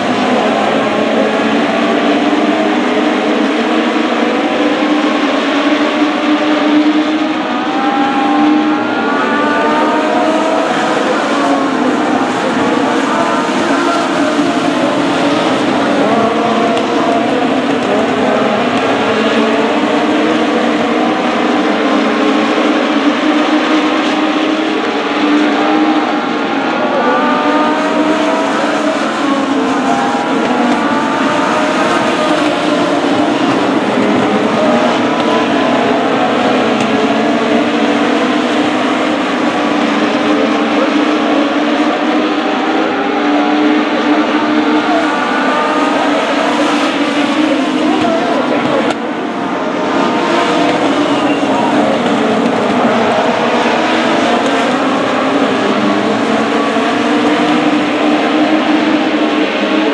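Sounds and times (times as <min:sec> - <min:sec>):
race car engines running hard: 0:00.0 - 0:59.9.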